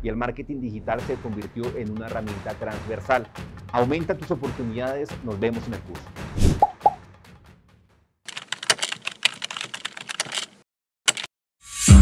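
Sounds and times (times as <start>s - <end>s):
keyboard typing: 8.3s - 11.3s.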